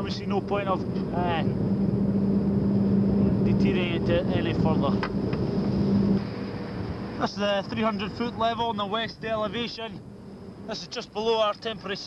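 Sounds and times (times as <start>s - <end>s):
wind rumbling over microphone: 0.0s - 10.8s
steady low hum: 0.0s - 12.0s.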